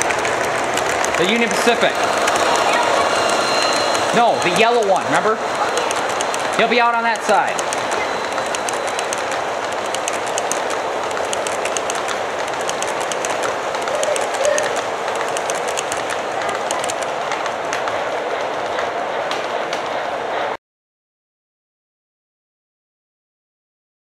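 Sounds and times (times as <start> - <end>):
wheels clicking over rail joints: 0.0 - 20.0
model train wheels rumbling: 0.0 - 20.6.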